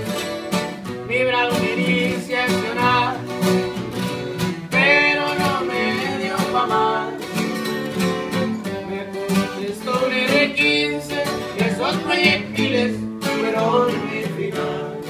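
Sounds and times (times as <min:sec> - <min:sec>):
acoustic guitar melodic runs: 0:00.0 - 0:15.0
strummed twelve-string guitar: 0:00.0 - 0:15.0.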